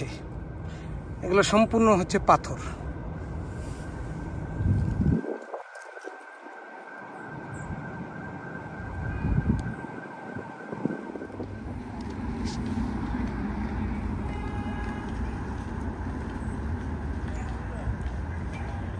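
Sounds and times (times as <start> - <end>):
distant traffic rumble: 0.0 - 18.9
faint steady high tone: 11.3 - 18.9.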